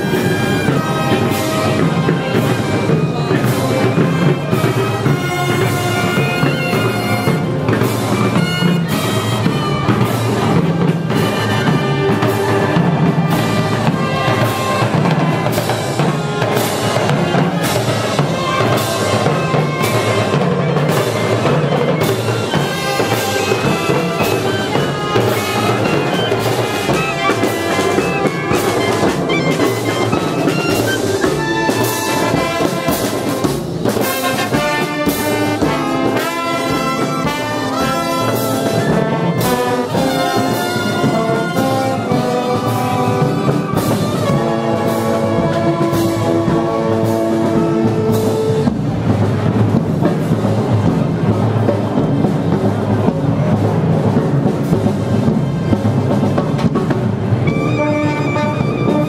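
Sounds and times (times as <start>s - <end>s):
marching brass band playing: 0.0s - 59.0s
snare and bass drums: 0.0s - 59.0s.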